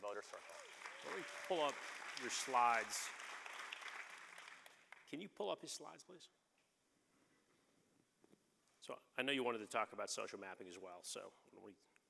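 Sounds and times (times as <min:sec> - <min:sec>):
faint audience applause: 0:00.0 - 0:05.1.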